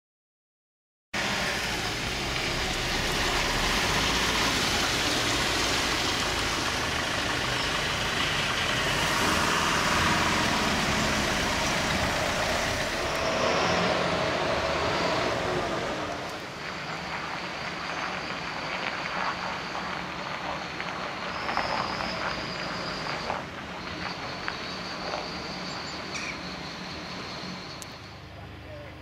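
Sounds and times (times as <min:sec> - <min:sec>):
diesel lorries passing: 0:01.2 - 0:29.0.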